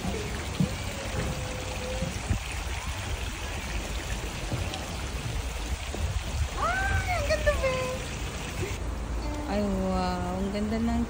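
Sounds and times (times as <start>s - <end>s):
water running into a pond: 0.0s - 11.0s
wind rumble on microphone: 0.0s - 11.0s.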